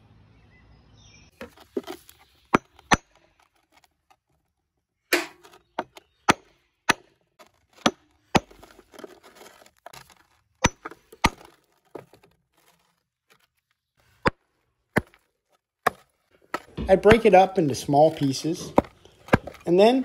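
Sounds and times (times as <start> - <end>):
stone crumbling and scraping: 1.4 - 4.5, 5.4 - 20.0
hammer striking stone: 18.7 - 19.8.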